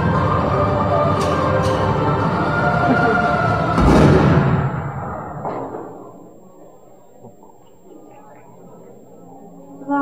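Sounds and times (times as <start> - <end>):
heavy booming hit: 3.8 - 6.2.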